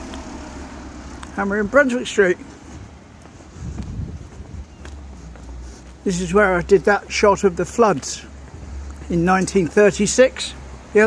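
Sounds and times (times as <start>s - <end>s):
wind buffeting microphone: 2.6s - 6.1s.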